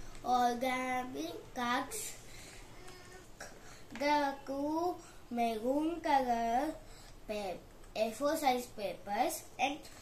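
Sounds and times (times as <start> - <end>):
soft intake of breath: 2.2 - 2.8, 6.8 - 7.2.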